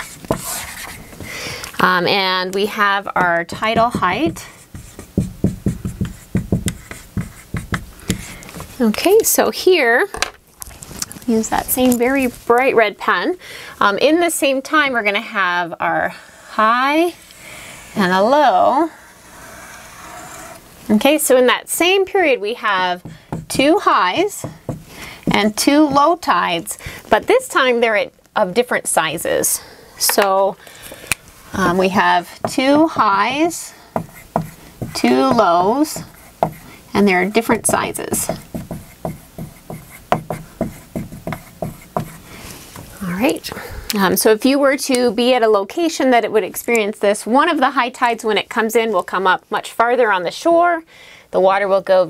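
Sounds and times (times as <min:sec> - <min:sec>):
marker rubbing on whiteboard: 0:00.0 - 0:01.2, 0:01.8 - 0:08.4, 0:19.2 - 0:20.6, 0:31.6 - 0:43.4
woman speaking: 0:01.8 - 0:04.5, 0:08.8 - 0:10.2, 0:11.2 - 0:17.2, 0:18.0 - 0:19.0, 0:20.9 - 0:24.6, 0:25.3 - 0:30.6, 0:31.6 - 0:33.9, 0:34.9 - 0:36.1, 0:36.9 - 0:38.4, 0:43.0 - 0:52.0.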